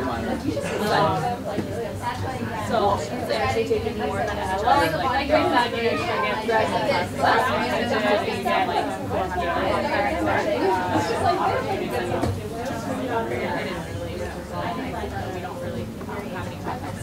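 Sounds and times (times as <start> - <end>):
overlapping conversations chatter: 0.0 - 17.0.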